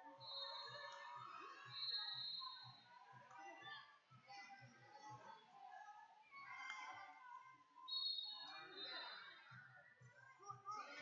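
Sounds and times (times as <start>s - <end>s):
faint murmur of voices: 0.0s - 11.0s
whistle blowing: 1.8s - 2.4s, 7.9s - 8.3s.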